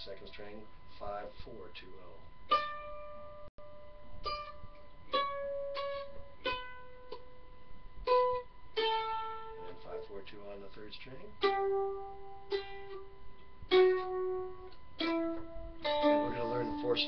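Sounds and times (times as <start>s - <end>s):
mandolin single notes: 2.5s - 7.4s, 8.0s - 10.1s, 11.2s - 17.0s.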